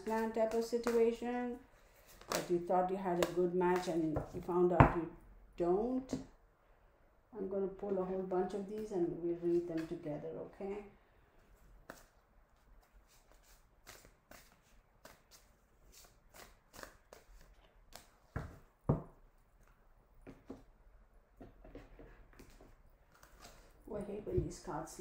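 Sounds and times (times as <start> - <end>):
playing cards clicking and flicking: 12.8 - 18.2.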